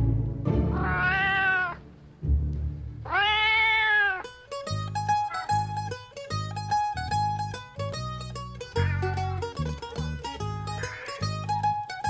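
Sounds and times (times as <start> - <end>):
plucked-string melody: 0.0 - 3.3, 4.1 - 12.0
cat meowing: 0.7 - 1.8, 3.0 - 4.4, 8.8 - 9.3, 10.6 - 11.5
background music with low beat: 1.8 - 3.1.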